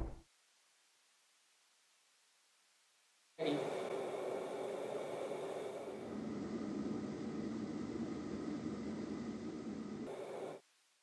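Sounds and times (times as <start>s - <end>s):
faint steady tones: 3.4s - 11.0s.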